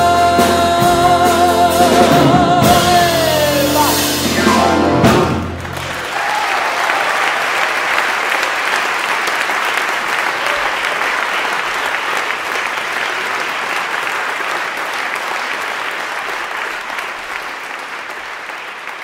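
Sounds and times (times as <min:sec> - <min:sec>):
audience applauding: 0:03.8 - 0:19.0.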